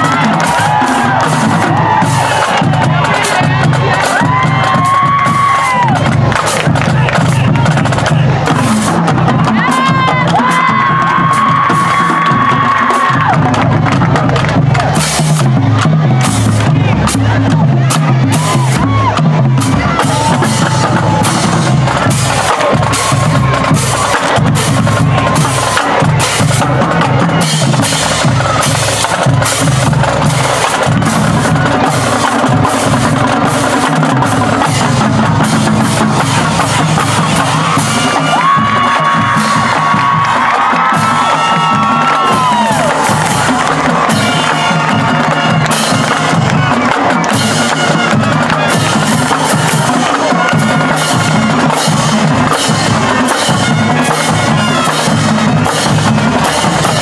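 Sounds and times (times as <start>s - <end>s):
marching drumline playing: 0.0s - 57.0s.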